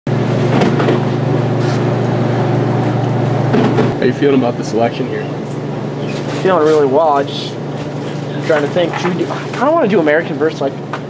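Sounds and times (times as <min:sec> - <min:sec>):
low mechanical hum: 0:00.1 - 0:11.0.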